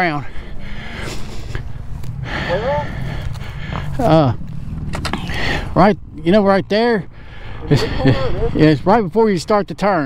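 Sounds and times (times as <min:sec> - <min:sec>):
dirt bike engine idling: 0:00.0 - 0:10.0.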